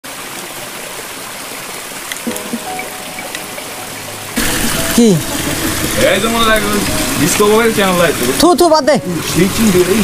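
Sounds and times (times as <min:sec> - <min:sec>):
stream trickling over rocks: 0:00.0 - 0:10.0
soft background music: 0:02.3 - 0:10.0.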